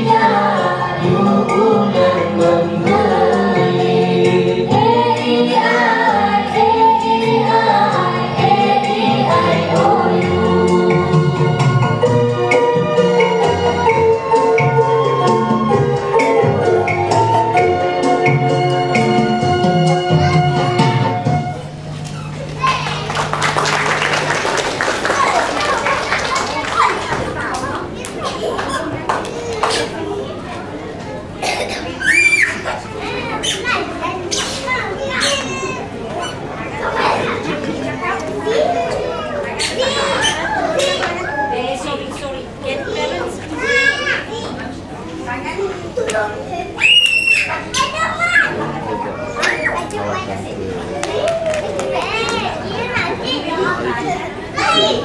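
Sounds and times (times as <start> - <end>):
keyboard backing music: 0.0 - 26.0
children's voices: 18.9 - 55.0
audience clapping: 21.9 - 29.9, 50.9 - 52.5
child's high-pitched squeal: 32.0 - 34.4, 39.6 - 41.7, 46.8 - 48.6, 49.2 - 49.9.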